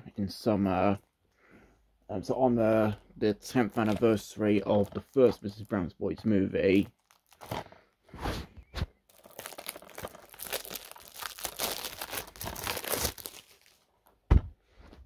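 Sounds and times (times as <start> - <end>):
packaging crinkling and rustling: 3.6 - 5.7, 6.7 - 7.8, 9.1 - 13.9.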